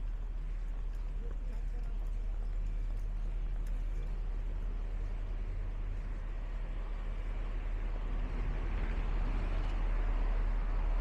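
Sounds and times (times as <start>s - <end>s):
footsteps on paved sidewalk: 0.0s - 11.0s
low street rumble: 0.0s - 11.0s.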